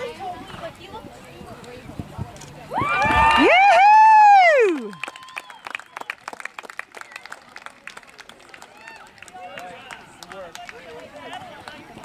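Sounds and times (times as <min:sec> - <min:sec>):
spectator cheering whoop: 0:02.7 - 0:05.6.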